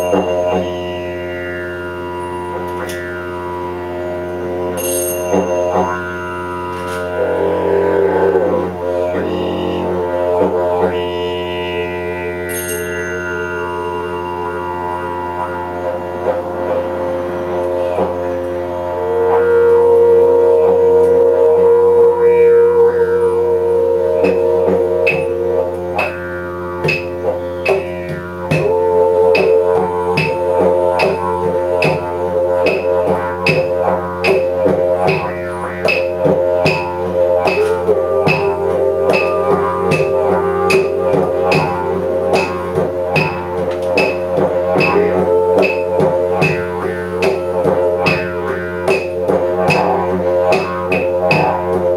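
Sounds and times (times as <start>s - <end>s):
didgeridoo drone: 0.0s - 51.9s
higher held tone: 0.0s - 51.9s
light percussive tapping: 26.8s - 32.0s, 32.6s - 51.9s.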